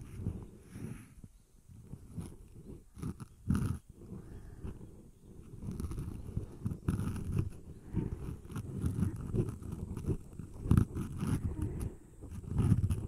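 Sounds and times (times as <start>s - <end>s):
rubbing on microphone: 0.0s - 13.0s.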